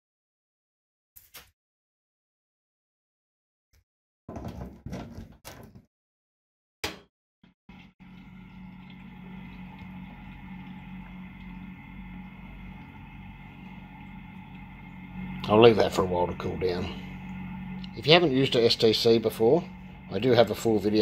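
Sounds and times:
chiller electric hum: 7.7 - 21.0.

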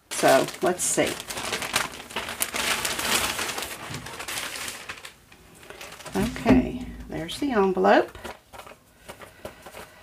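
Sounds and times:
plastic sleeves crinkling: 0.0 - 10.0.

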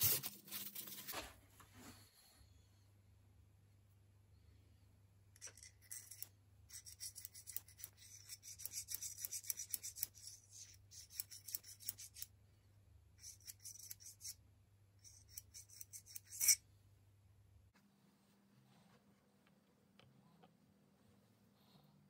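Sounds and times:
steel parts scraping and clicking: 5.4 - 12.3, 15.0 - 16.6.

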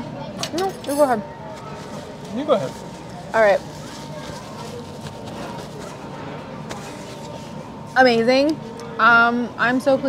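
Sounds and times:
dining area hum: 0.0 - 10.0
distant chatter: 0.0 - 10.0.

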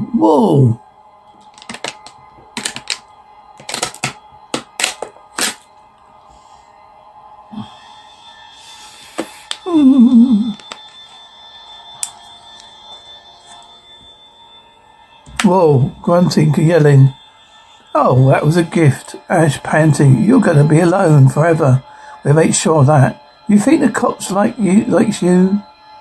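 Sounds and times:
eerie held tone: 0.0 - 26.0.

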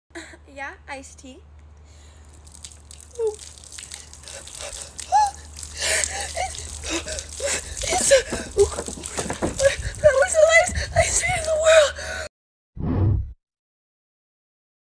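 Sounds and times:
liquid pouring and splashing: 2.1 - 11.6
woman whimpering and gasping: 4.4 - 8.6.

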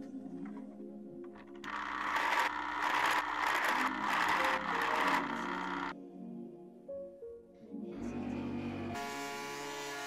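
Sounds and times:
background music: 0.0 - 10.0
drill press boring into wood: 1.6 - 5.9.

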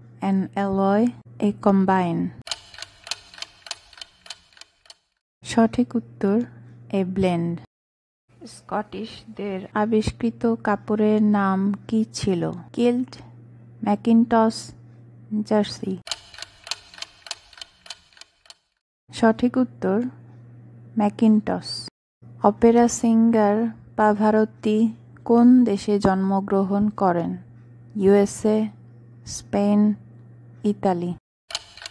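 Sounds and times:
clock ticking: 2.5 - 5.0, 16.1 - 18.6.

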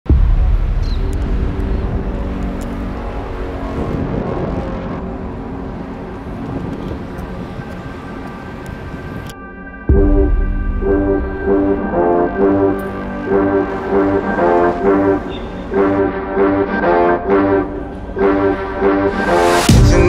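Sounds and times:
low traffic rumble: 0.1 - 19.9
held music chord: 7.9 - 20.0.

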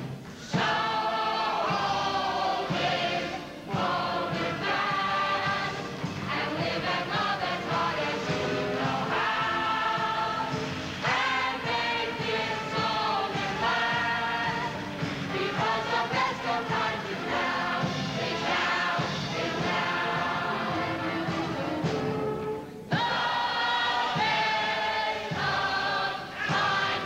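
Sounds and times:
mixed chorus singing: 0.0 - 27.0.

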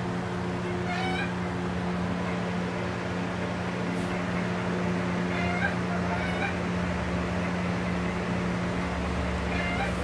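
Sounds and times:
electric fan hum: 0.0 - 10.0
chickens chirping: 0.4 - 10.0.

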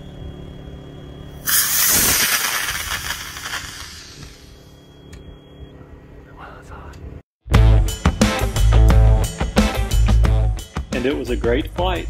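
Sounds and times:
rocket motor exhaust rush: 1.4 - 4.6.

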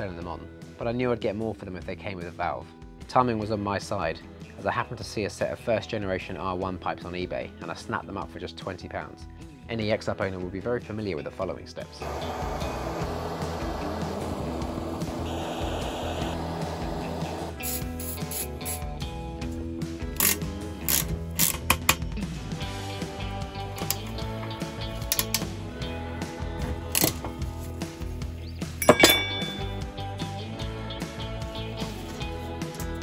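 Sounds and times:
background music: 0.0 - 33.0
gas blowtorch running: 12.0 - 17.8
ringing metallic strike: 28.8 - 29.8.

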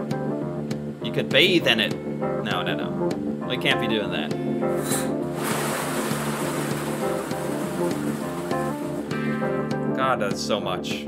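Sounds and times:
guitar music: 4.1 - 10.0
liquid gushing into steel tank: 5.0 - 9.2.

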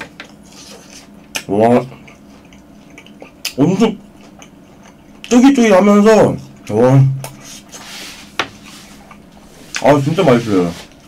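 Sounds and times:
chewing crunching and mouth sounds: 0.2 - 5.4, 9.0 - 9.8.

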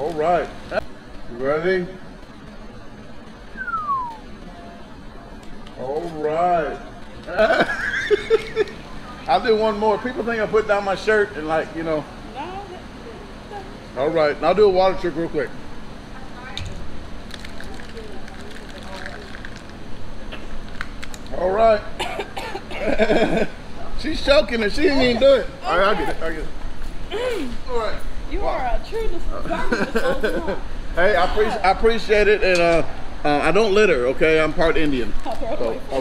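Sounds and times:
outdoor background noise: 0.0 - 36.0
whistle sliding down in pitch: 3.6 - 4.3.

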